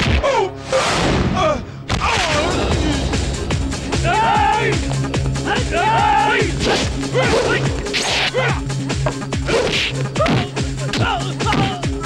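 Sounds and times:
background music with low drone: 0.0s - 12.0s
fight hits: 6.6s - 8.5s.

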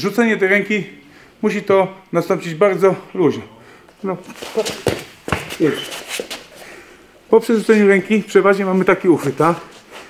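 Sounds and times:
feet scuffing on mat: 4.3s - 6.7s.

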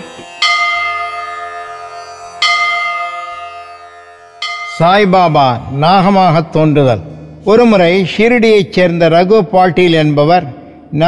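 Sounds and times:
bell ringing: 0.0s - 8.0s
faint low drone: 0.0s - 11.0s.

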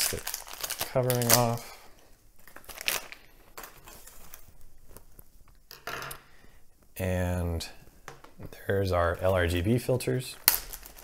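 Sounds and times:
plastic shrink-wrap crinkling: 0.0s - 5.4s, 10.3s - 11.0s.

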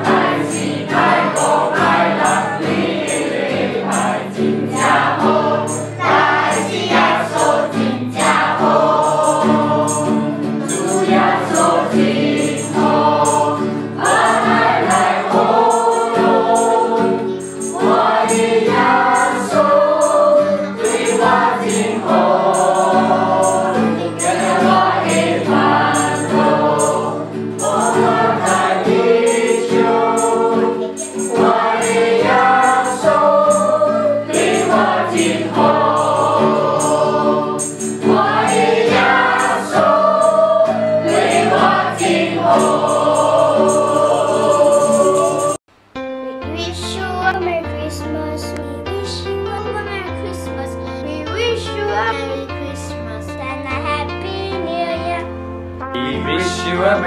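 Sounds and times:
children and adults singing carol: 0.0s - 45.6s
high-pitched percussive beat: 0.0s - 45.6s.

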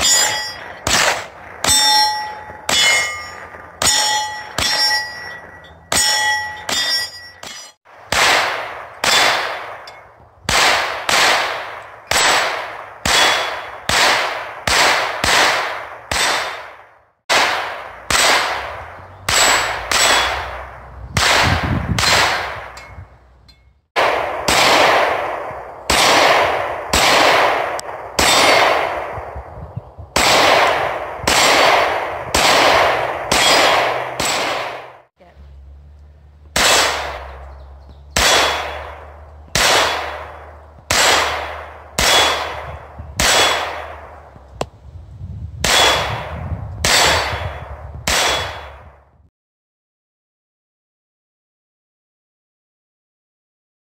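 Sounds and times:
hits ringing on steel targets: 0.0s - 15.5s, 17.3s - 27.5s, 28.2s - 28.9s, 30.2s - 35.0s, 36.6s - 44.3s, 45.6s - 48.9s
pistol shots: 0.0s - 22.9s, 24.0s - 29.4s, 30.2s - 35.1s, 36.5s - 44.4s, 45.6s - 49.0s.

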